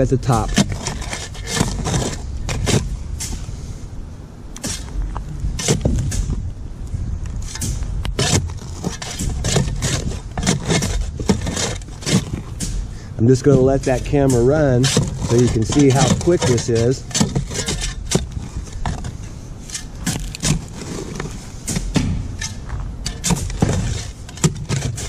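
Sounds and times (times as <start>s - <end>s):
steel tool scraping sand: 0.0s - 3.4s, 7.4s - 25.0s.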